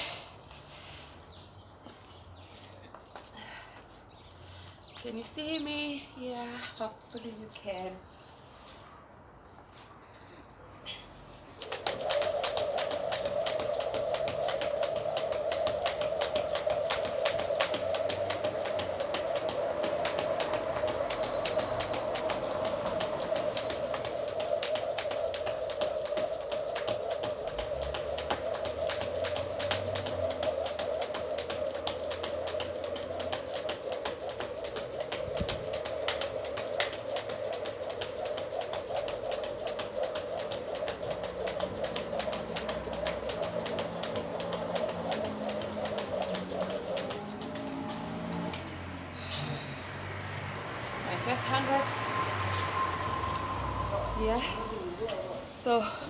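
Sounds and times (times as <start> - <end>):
rope and feet tapping ground: 1.7 - 4.0, 11.4 - 49.5
jump rope whirring swish: 11.4 - 55.5.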